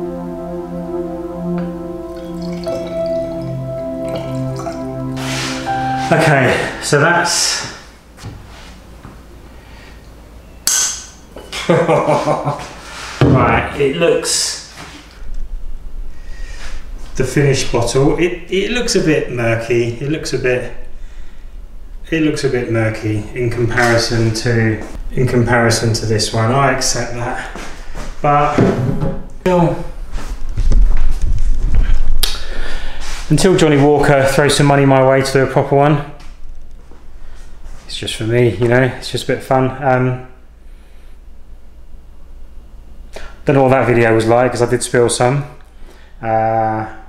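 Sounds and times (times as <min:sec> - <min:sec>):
low room hum: 0:00.0 - 0:47.0
microphone handling rumble: 0:30.0 - 0:32.2.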